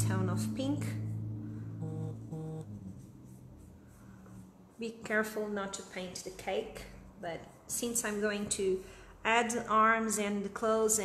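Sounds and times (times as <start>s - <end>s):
person humming: 1.8s - 2.6s
soft brush swishing on fondant: 2.6s - 11.0s.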